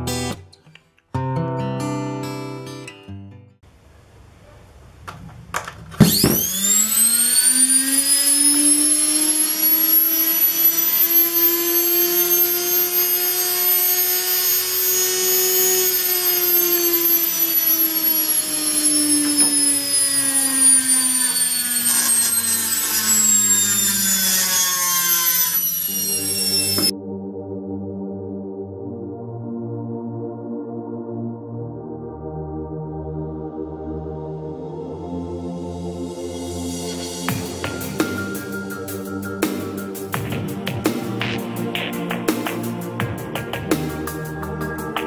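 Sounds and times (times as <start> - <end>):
electric motor whining: 6.0 - 26.9.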